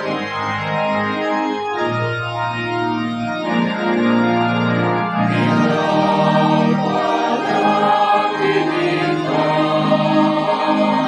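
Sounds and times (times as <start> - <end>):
sustained organ: 0.0 - 11.0
church choir singing a hymn: 5.2 - 11.0.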